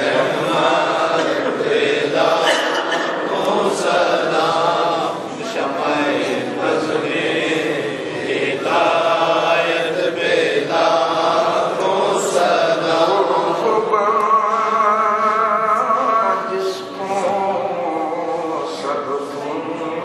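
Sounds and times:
melodic religious chanting: 0.0s - 20.0s.

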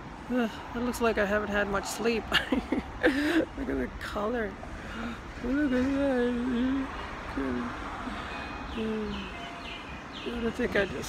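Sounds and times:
bird chirping: 8.3s - 11.0s.

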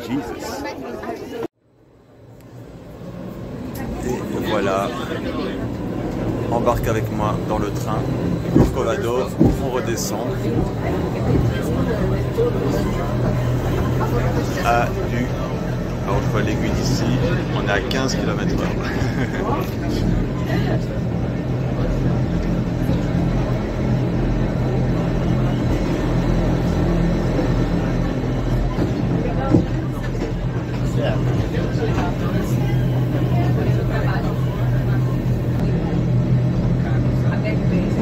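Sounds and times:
electric train drive hum: 0.0s - 38.0s
wheels rumbling on track: 2.1s - 38.0s.

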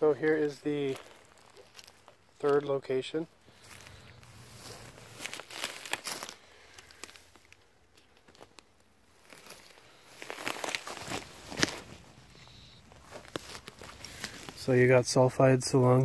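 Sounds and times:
footsteps on dry grass and stones: 0.0s - 7.5s, 9.1s - 14.8s
grass brushing and crackling: 0.0s - 16.0s.

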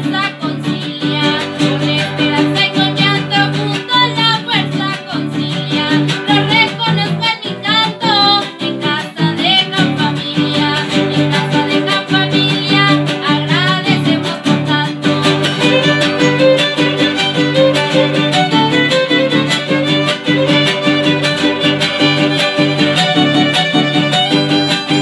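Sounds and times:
guitars strumming: 0.0s - 25.0s
violin melody: 0.0s - 25.0s.

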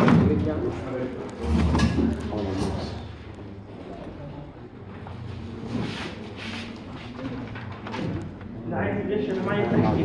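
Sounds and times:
man speaking in a lecture: 8.6s - 10.0s.

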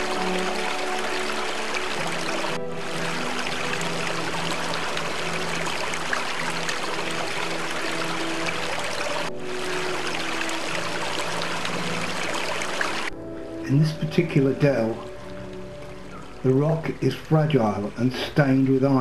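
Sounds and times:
stream running over stones: 0.0s - 13.2s, 13.9s - 19.0s
soft background music: 0.0s - 19.0s.

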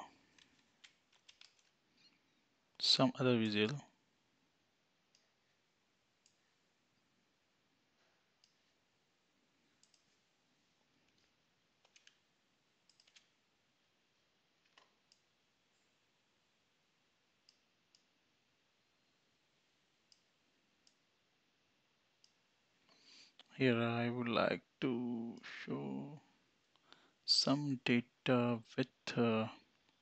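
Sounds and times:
computer mouse clicks: 0.2s - 2.2s, 6.2s - 6.5s, 8.4s - 8.8s, 9.8s - 10.2s, 11.0s - 13.4s, 14.6s - 15.8s, 17.4s - 18.1s, 20.0s - 21.1s, 22.2s - 23.4s.

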